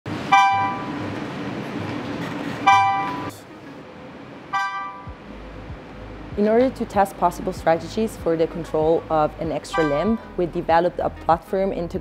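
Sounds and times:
steady low hum: 0:00.1 - 0:12.0.

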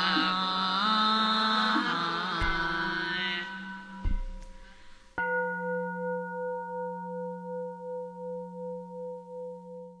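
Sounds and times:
bowl bell ringing: 0:03.6 - 0:10.0.

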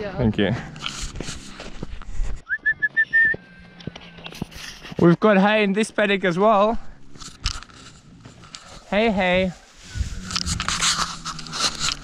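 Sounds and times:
short high whistled notes: 0:02.5 - 0:03.4
wind rumble on microphone: 0:09.8 - 0:11.6.

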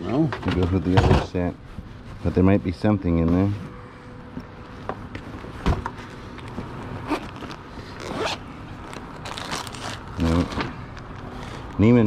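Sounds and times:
zipper pulled open: 0:07.0 - 0:10.5.

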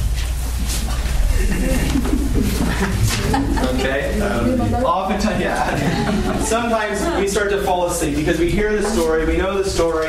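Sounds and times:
low voices of people: 0:00.7 - 0:10.0.

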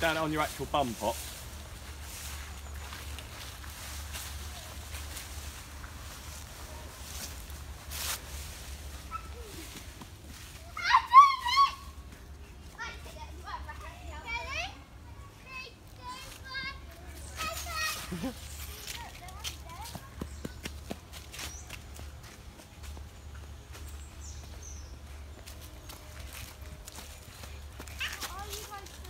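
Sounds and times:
children shrieking and squealing: 0:09.0 - 0:13.0.

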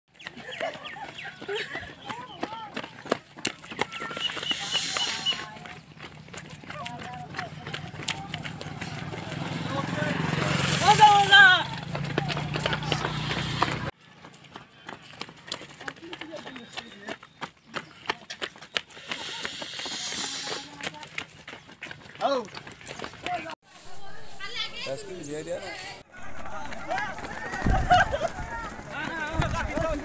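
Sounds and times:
running footsteps on pavement: 0:00.1 - 0:23.6, 0:26.0 - 0:30.0.

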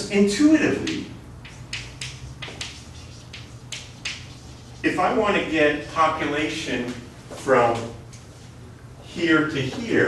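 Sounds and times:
low room hum: 0:00.0 - 0:10.0
chalk tapping and scratching on board: 0:00.8 - 0:05.0.

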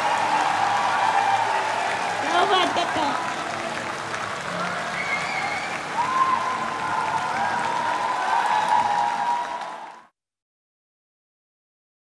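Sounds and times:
crowd applauding: 0:00.0 - 0:10.1.

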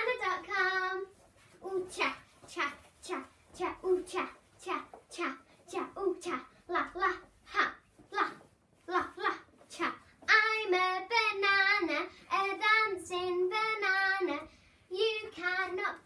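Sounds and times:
girl singing: 0:00.0 - 0:16.0.

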